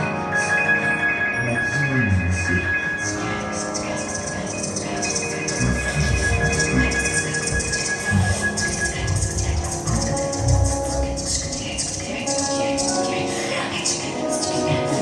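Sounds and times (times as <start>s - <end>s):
held steady tones: 0.0s - 15.0s.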